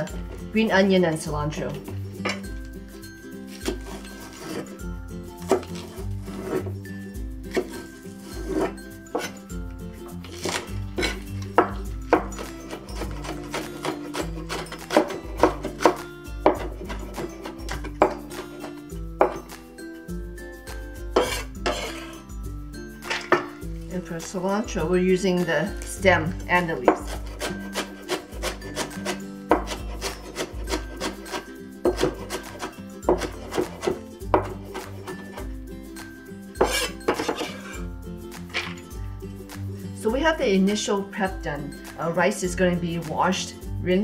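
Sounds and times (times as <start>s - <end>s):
background music with low notes: 0.0s - 44.0s
knife chopping on wooden board: 3.5s - 4.7s, 5.4s - 6.7s, 7.5s - 9.4s, 10.3s - 19.4s, 21.2s - 22.2s, 26.8s - 35.4s, 36.6s - 37.8s.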